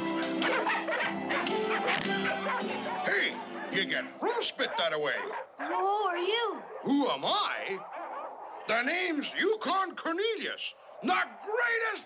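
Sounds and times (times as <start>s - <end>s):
background music: 0.0s - 5.5s
sled dogs barking and yipping: 0.0s - 12.0s.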